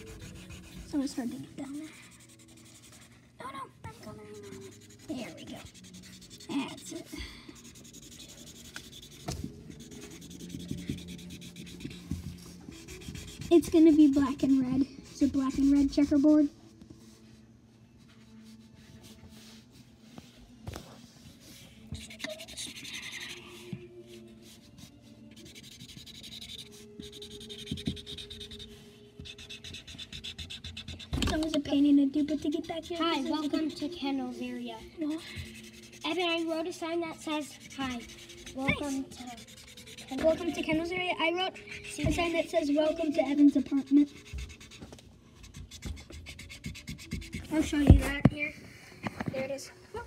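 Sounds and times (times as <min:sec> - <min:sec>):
marker scribbling on cardboard: 0:00.0 - 0:03.3, 0:04.0 - 0:17.2, 0:21.4 - 0:49.2
child's voice: 0:00.9 - 0:02.1, 0:03.4 - 0:05.8, 0:13.4 - 0:16.6, 0:31.2 - 0:44.2, 0:47.4 - 0:48.6.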